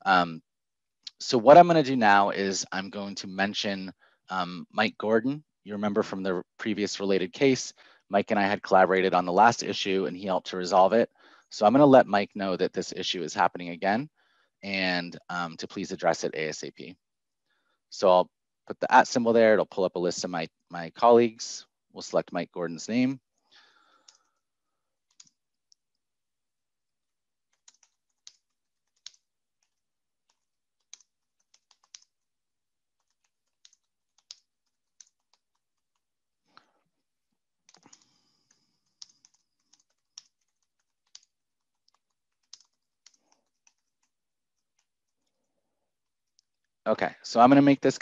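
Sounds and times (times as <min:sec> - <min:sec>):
computer keyboard clicks: 0:27.6 - 0:29.2, 0:30.3 - 0:32.1, 0:33.0 - 0:35.6, 0:38.8 - 0:44.1.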